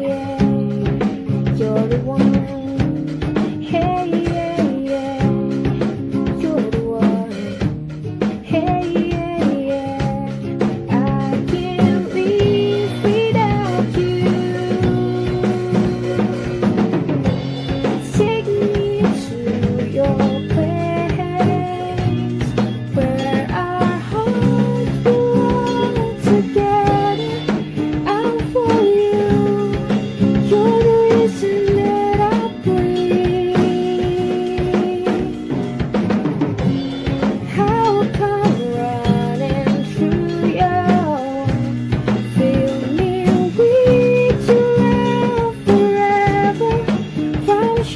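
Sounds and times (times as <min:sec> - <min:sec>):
woman singing: 0:00.0 - 0:36.0, 0:36.6 - 0:47.9
acoustic guitar strumming: 0:00.0 - 0:47.9
drum kit steady beat: 0:00.0 - 0:47.9.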